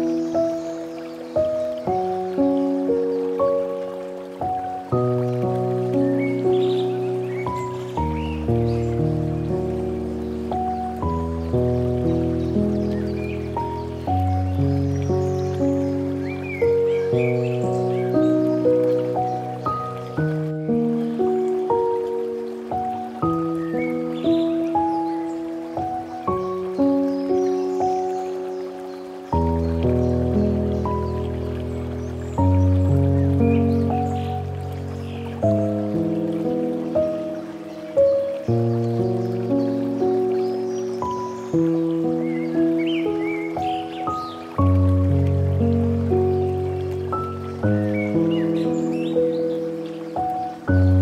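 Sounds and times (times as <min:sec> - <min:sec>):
slow solo piano music: 0:00.0 - 0:51.0.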